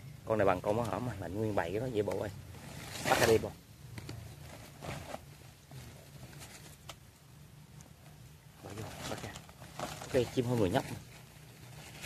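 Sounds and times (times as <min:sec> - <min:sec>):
rustling on dry leaves: 0:00.3 - 0:07.0, 0:08.6 - 0:12.0.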